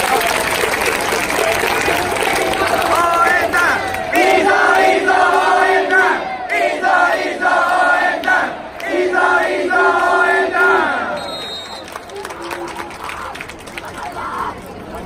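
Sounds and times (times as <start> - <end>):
crowd singing a chant: 2.2 - 11.3.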